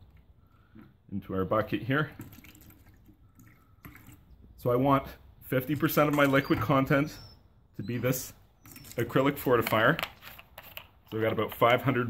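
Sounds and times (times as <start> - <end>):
liquid trickling into plastic bucket: 2.0 - 4.4.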